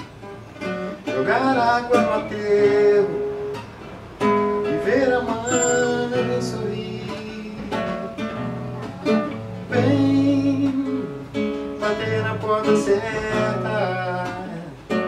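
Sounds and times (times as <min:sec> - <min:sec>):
classical guitar playing: 0:00.0 - 0:15.0.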